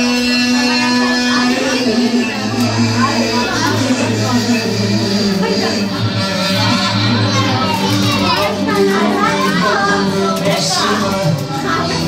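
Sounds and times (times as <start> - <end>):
children's chatter: 0.0 - 12.0
loud music with bass line: 0.0 - 12.0.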